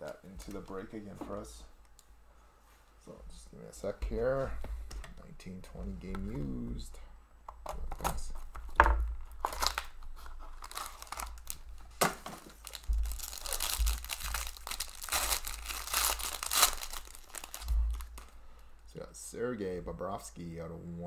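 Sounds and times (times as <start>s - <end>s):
foil wrapper tearing and crinkling: 9.3s - 18.4s.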